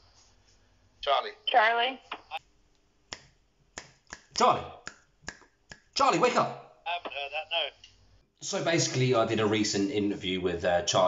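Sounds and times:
finger snaps: 3.1 - 6.0.

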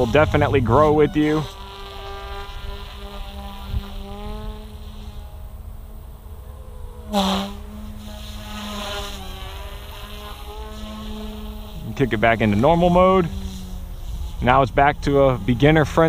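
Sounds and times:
rc helicopter motor and rotor whine: 0.0 - 16.0.

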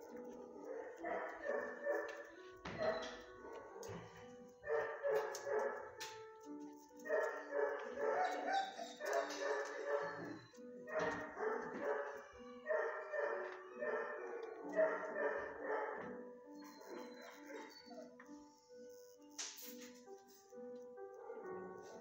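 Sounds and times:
dogs barking: 0.0 - 18.2, 21.0 - 22.0
music: 0.0 - 22.0.

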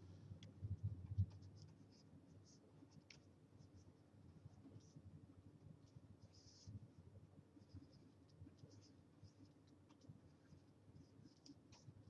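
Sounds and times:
stylus scratching on tablet: 0.8 - 5.0, 5.7 - 6.8, 7.5 - 12.0.

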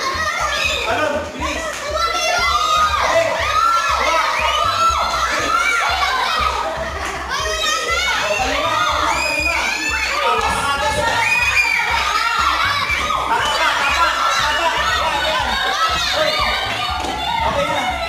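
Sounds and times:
children shouting and squealing: 0.0 - 18.0.

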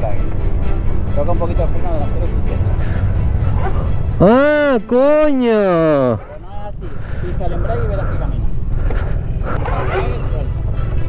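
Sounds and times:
indistinct voices talking: 0.0 - 11.0
steady low rumble: 0.2 - 4.8, 6.3 - 11.0.

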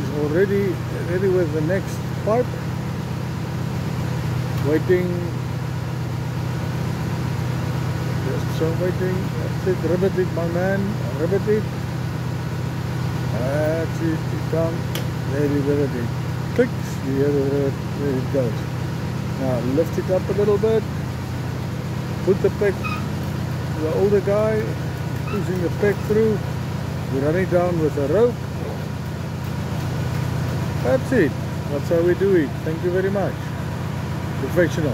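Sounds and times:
drilling rig engine humming: 0.0 - 34.9.

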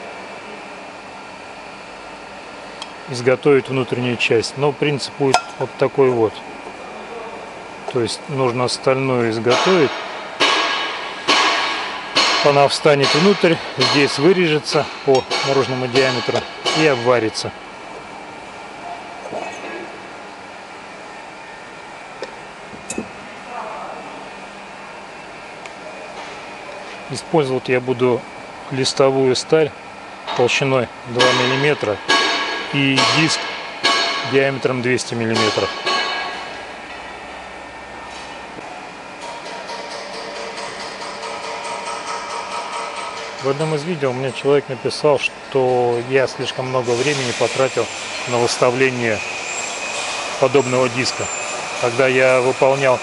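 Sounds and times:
workshop machinery humming: 0.0 - 53.0.

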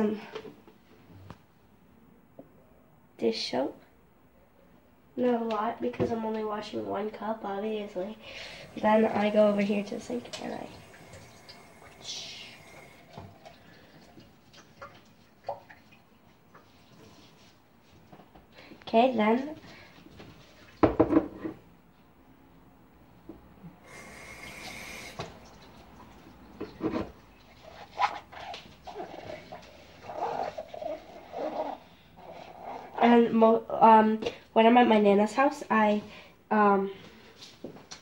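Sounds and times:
sponge squeaking in a ceramic mug: 27.6 - 33.1.

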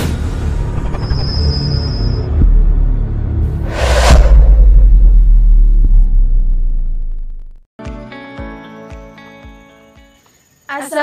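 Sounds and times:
deep bass rumble: 2.3 - 7.7.

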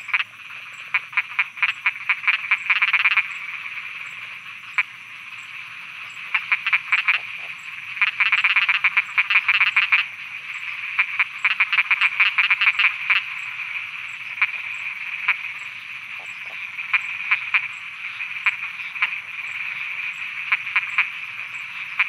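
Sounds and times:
frogs croaking: 0.0 - 22.0.

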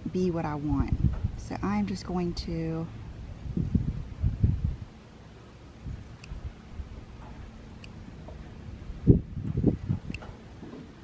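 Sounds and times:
scissors cutting fabric: 5.7 - 6.4, 9.8 - 10.3
low muffled bumps: 8.2 - 11.0.

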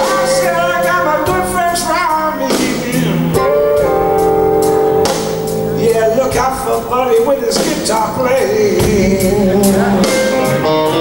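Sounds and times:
blues band playing: 0.0 - 11.0.

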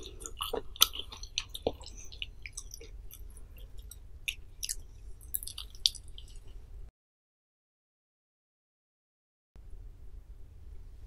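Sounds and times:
wet chewing mouth smacks: 0.0 - 6.6
faint low hum: 0.0 - 6.9, 9.6 - 11.0.

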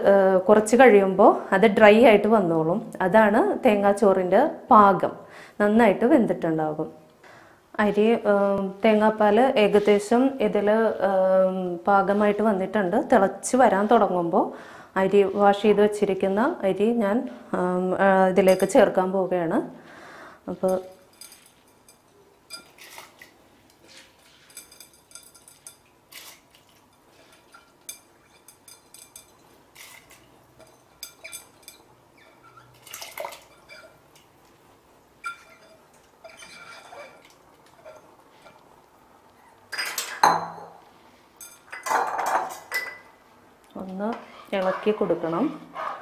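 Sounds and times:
glass clinking against metal pot: 24.5 - 25.9, 27.5 - 29.5, 30.6 - 32.6, 33.5 - 34.0, 35.2 - 37.2
utensils scraping metal pot: 35.2 - 38.6, 44.1 - 46.0.

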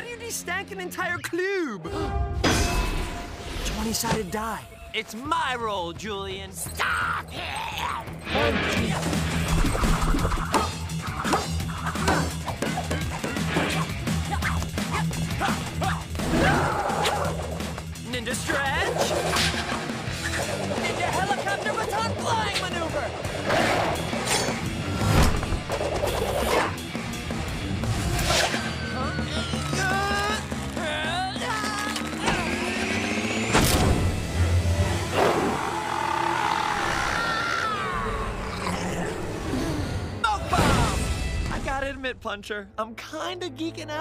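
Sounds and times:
cartoon background music: 0.0 - 44.0
wordless cries and grunts: 6.7 - 8.3, 9.8 - 17.5, 35.3 - 41.0.

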